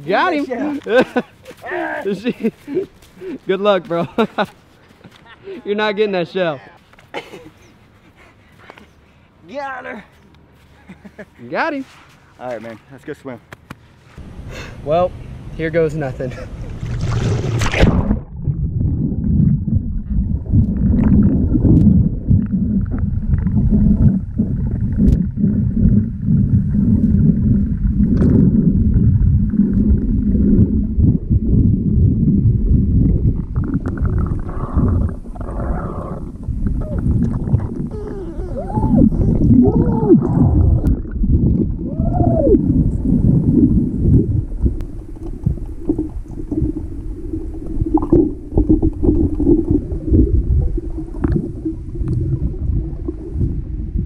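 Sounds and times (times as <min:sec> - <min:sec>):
water splash: 0:16.5 - 0:25.3
bubbling: 0:16.5 - 0:54.0
muffled underwater rumble: 0:16.6 - 0:54.0
short warbling sounds: 0:36.8 - 0:41.2.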